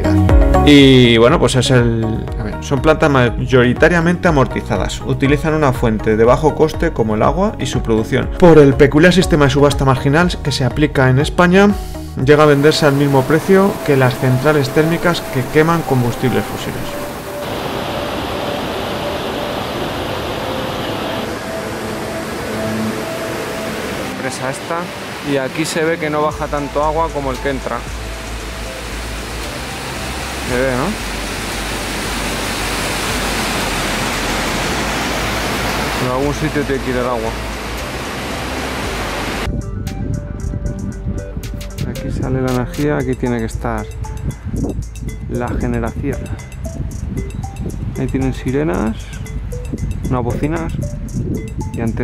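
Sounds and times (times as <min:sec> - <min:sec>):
faint background music: 0:00.0 - 0:52.0
rushing water: 0:12.3 - 0:39.5
river rapids roaring: 0:12.5 - 0:39.5
light ticking percussion: 0:26.3 - 0:30.9, 0:39.4 - 0:52.0.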